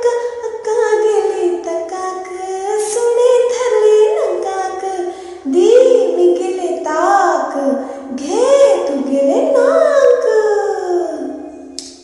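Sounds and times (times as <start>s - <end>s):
person singing a lullaby: 0.0s - 11.7s.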